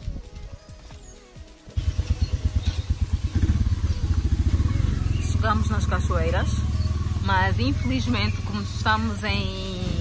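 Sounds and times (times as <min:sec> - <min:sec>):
engine idling: 0:01.7 - 0:10.0.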